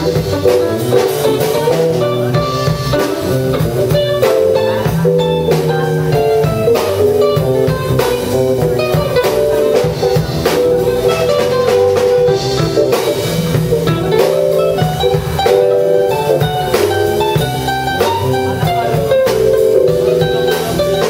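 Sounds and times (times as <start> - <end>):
drum kit keeping time: 0.0 - 21.0
guitar lines: 0.0 - 21.0
jazz band jamming: 0.0 - 21.0.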